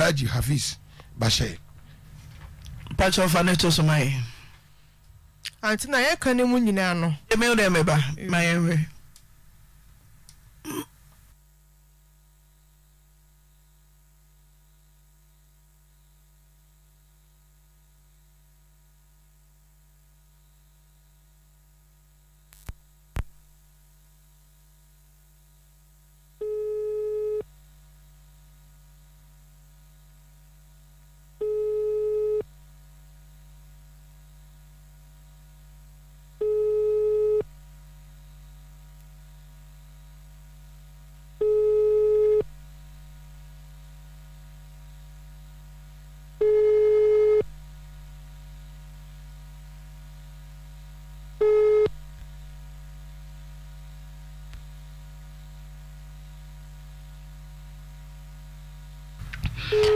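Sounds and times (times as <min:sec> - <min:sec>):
electrical hum: 0:00.0 - 0:59.9.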